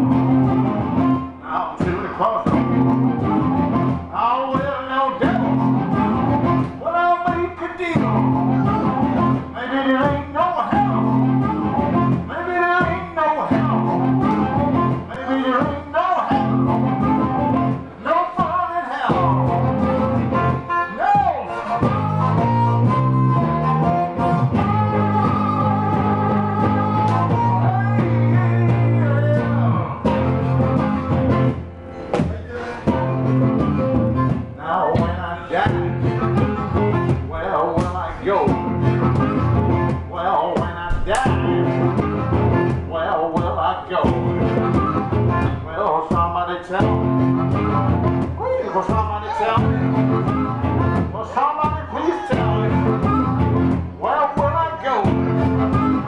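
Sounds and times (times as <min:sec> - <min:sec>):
amplified blues harmonica: 0:00.0 - 0:56.0
electric guitar accompaniment: 0:00.0 - 0:56.0.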